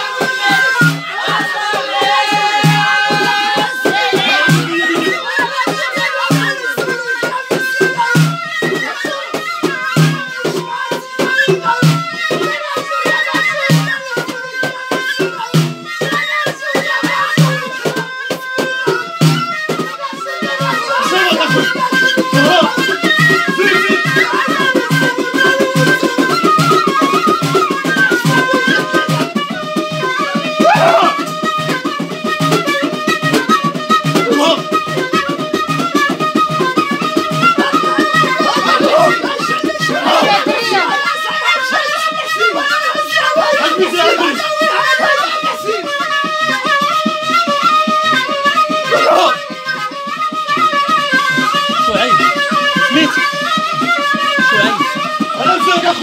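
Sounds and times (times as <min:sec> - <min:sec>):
frame drums beating: 0:00.0 - 0:56.0
high wavering pipe melody: 0:00.0 - 0:56.0.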